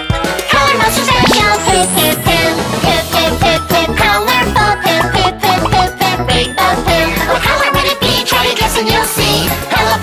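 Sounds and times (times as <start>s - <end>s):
upbeat children's song: 0.2s - 10.0s
high voice singing: 0.5s - 8.0s.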